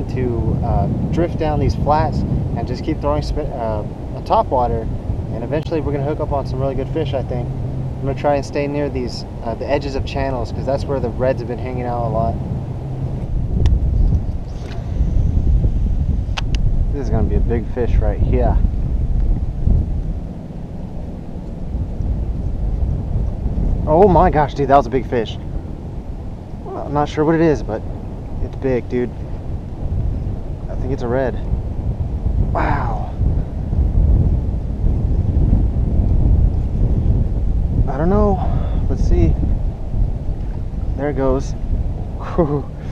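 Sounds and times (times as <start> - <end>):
wind buffeting microphone: 0.0 - 42.9.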